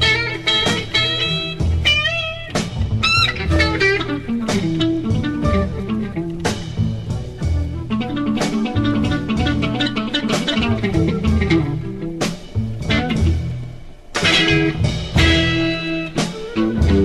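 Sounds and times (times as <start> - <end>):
blues rock band playing: 0.0 - 17.0
electric guitar: 0.0 - 17.0.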